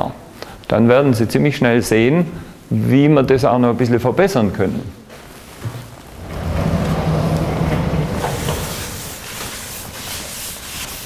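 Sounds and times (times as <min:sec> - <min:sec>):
sliding chalkboard panel rumbling: 0:05.6 - 0:11.0.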